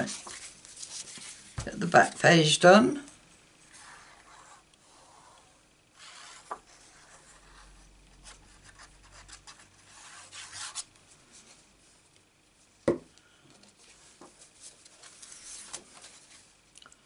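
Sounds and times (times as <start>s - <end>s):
paper rustling on craft mat: 0.0s - 2.4s, 3.7s - 12.0s, 13.6s - 16.6s.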